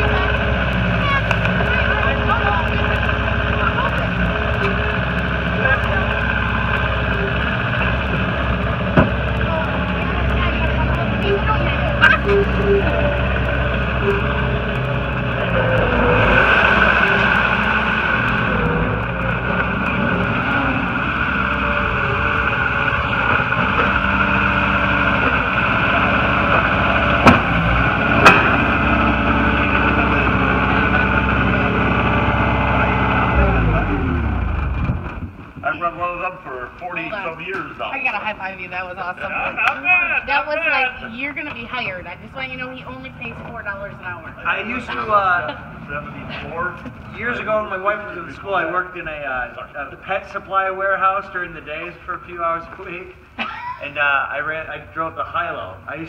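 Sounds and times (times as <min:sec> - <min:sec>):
diesel engine running under load: 0:00.0 - 0:53.4.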